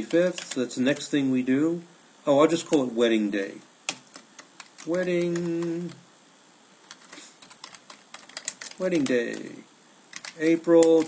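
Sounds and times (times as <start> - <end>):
computer keyboard typing: 0.0 - 0.7, 3.9 - 6.0, 6.9 - 9.5, 10.1 - 11.0.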